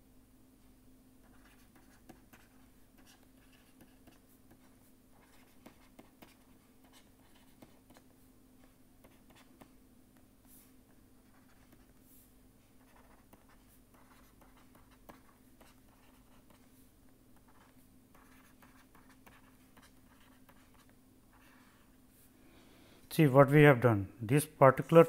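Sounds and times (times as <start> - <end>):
steady low hum: 0.0 - 25.0
stylus scratching on tablet: 1.2 - 8.1, 9.0 - 9.7, 10.5 - 12.0, 12.8 - 16.7, 17.4 - 21.9.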